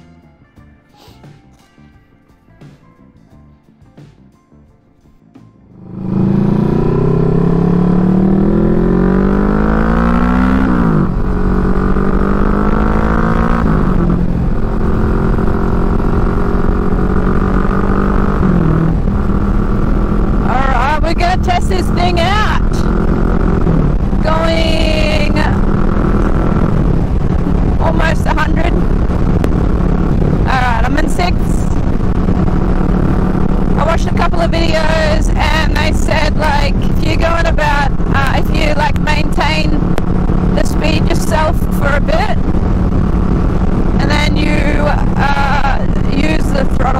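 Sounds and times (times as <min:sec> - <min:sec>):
road and wind noise: 0:05.2 - 0:46.9
motorcycle engine accelerating: 0:05.6 - 0:46.9.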